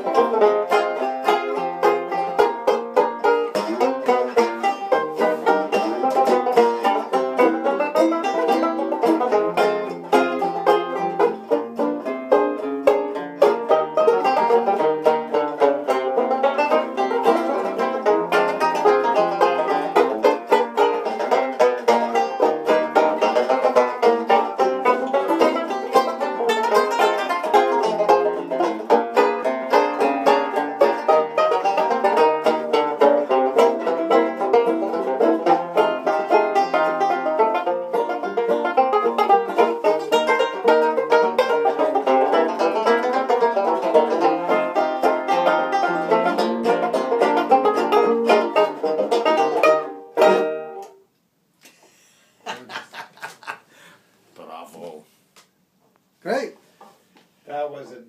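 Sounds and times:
banjos playing ragtime: 0.0s - 51.1s, 51.8s - 53.9s.

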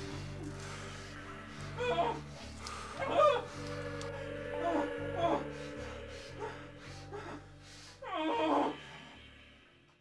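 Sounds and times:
low musical drone: 0.0s - 10.0s
whimpering cry: 1.8s - 5.8s, 6.4s - 8.9s.

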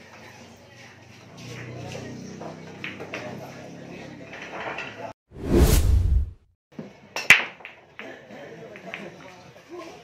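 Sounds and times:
deep rumble: 5.4s - 6.4s
whoosh transition: 5.4s - 6.4s.

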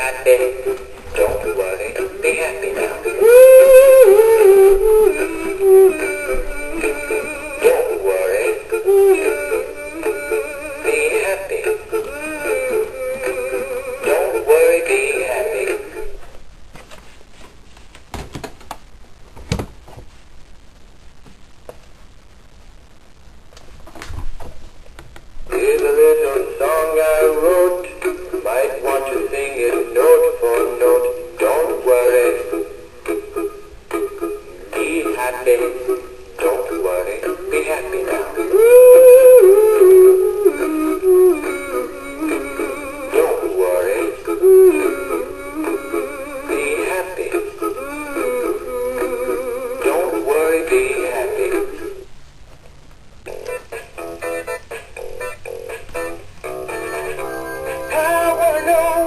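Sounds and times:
toy fish song through small speaker: 0.0s - 16.1s, 25.5s - 52.0s, 53.3s - 59.0s.

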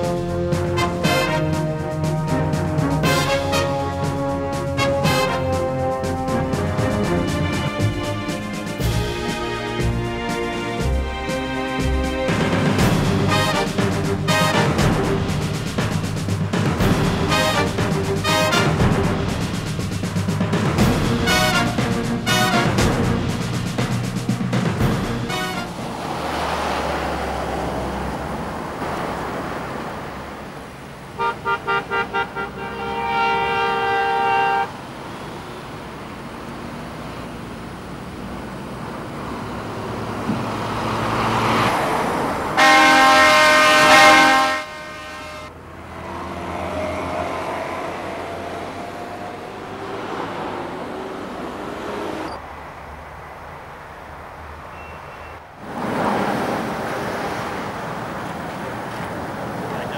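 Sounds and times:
long horn honk: 0.0s - 15.5s, 16.8s - 19.4s, 20.9s - 23.3s, 25.2s - 26.0s, 31.2s - 34.8s, 42.6s - 45.6s
highway traffic passing: 0.0s - 59.9s
short horn toots: 31.2s - 34.7s, 42.6s - 45.5s.

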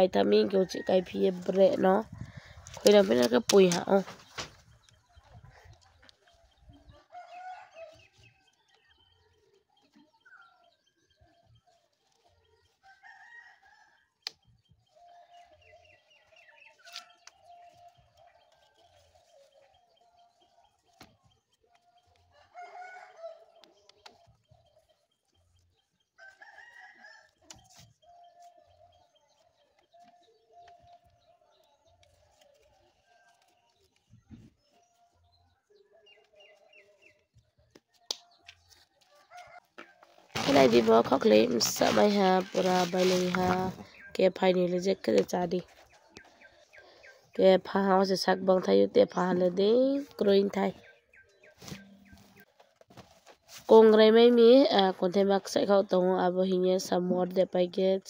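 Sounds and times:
faint rooster crowing: 6.9s - 8.4s, 12.8s - 14.2s, 22.3s - 23.8s, 26.2s - 29.1s, 39.0s - 40.5s.

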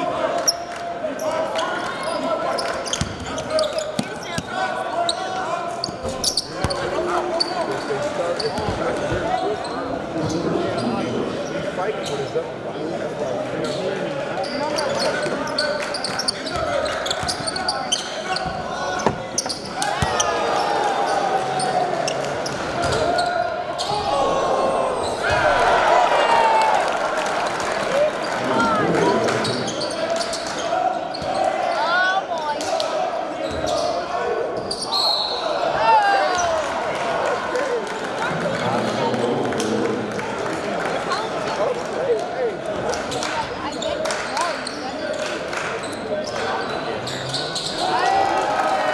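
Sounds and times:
crowd chatter and shouting: 0.0s - 48.9s.

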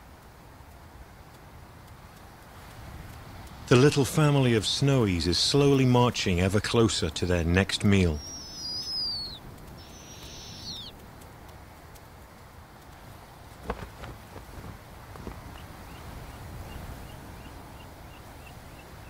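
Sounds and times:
low outdoor hush: 0.0s - 19.0s
owlets hissy descending calls: 8.1s - 10.9s
faint small chirps: 8.2s - 10.9s.

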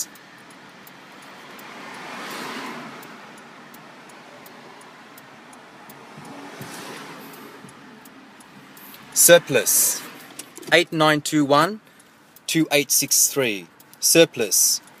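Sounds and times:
faint ticks: 0.0s - 9.0s
road noise hum: 0.0s - 15.0s
vehicle passing: 0.4s - 10.8s.

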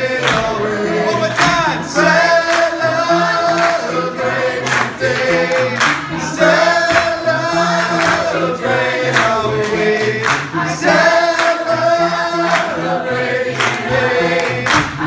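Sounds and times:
vocal group singing in harmony: 0.0s - 15.0s
hand claps: 0.1s - 2.8s, 4.6s - 10.6s, 11.2s - 11.7s, 13.5s - 15.0s.

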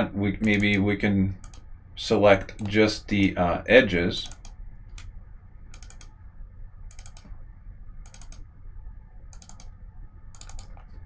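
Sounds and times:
faint low steady hum: 0.0s - 11.0s
computer mouse double-clicking: 4.2s - 4.6s, 5.7s - 6.1s, 6.9s - 7.3s, 8.0s - 8.4s, 9.3s - 9.7s, 10.3s - 10.9s.

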